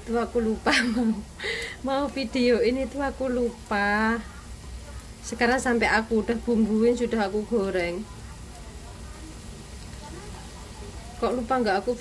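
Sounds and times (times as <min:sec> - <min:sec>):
fritters frying in hot oil: 0:00.0 - 0:12.0.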